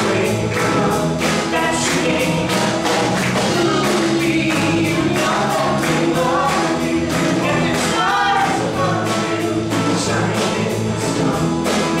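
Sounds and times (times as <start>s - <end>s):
acoustic guitar: 0.0s - 12.0s
bass: 0.0s - 12.0s
drums keeping a steady beat: 0.0s - 12.0s
people singing: 0.0s - 12.0s.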